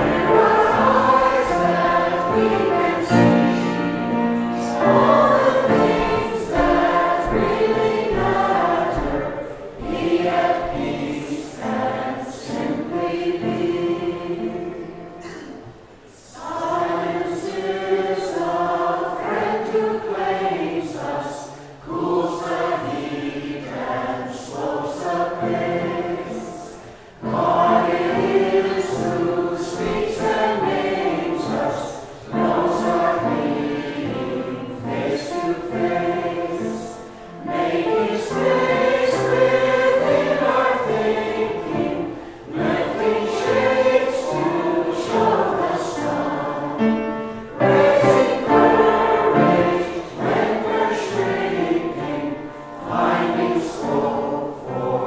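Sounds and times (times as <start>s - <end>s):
choir singing a hymn: 0.0s - 55.0s
singers breathing: 26.7s - 27.2s, 42.1s - 42.5s.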